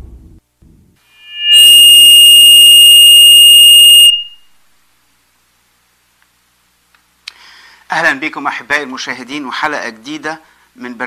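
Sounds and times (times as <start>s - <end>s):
high synthesized tone: 1.1s - 4.4s.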